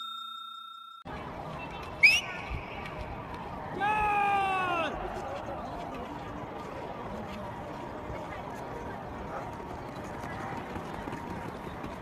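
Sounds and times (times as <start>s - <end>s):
open-air noise: 1.0s - 12.0s
footsteps on running track: 1.4s - 4.1s, 4.9s - 12.0s.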